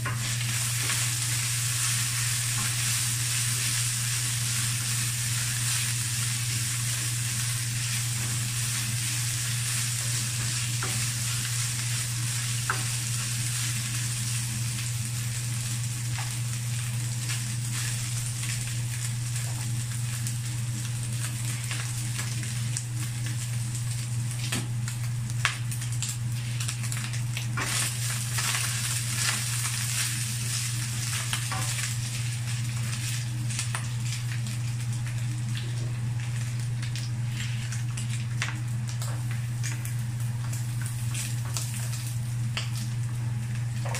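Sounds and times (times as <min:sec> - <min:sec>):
meat sizzling in a wok: 0:00.0 - 0:43.9.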